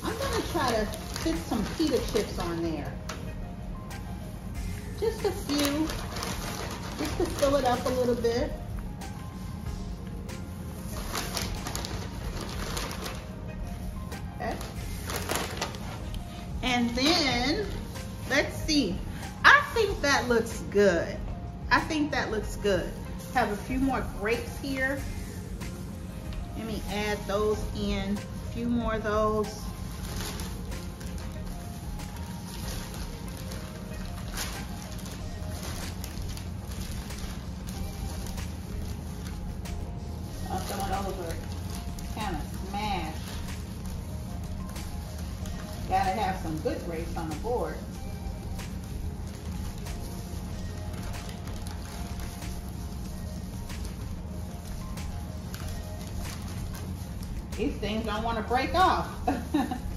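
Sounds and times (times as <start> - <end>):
plastic snack bag crinkling: 0.0 - 3.4, 4.7 - 8.6, 10.7 - 17.0, 29.4 - 59.9
background music: 0.0 - 59.9.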